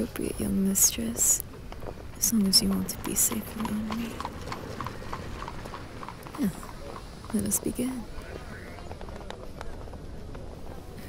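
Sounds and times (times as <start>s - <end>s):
clip-clop of hard steps: 1.4s - 11.0s.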